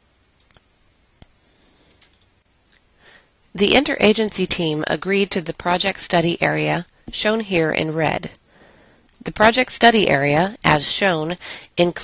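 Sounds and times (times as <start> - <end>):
faint sharp clicks: 0.4 - 1.3.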